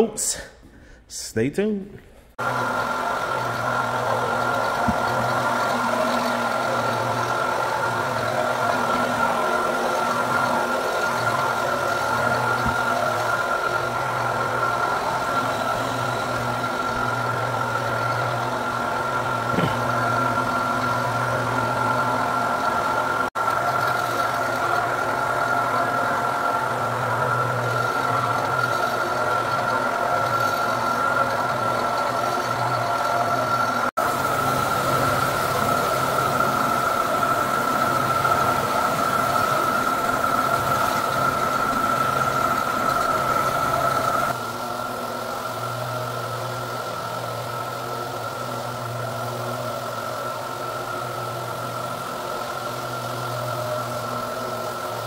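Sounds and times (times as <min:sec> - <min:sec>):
floor buffer motor whine: 0:02.4 - 0:55.0.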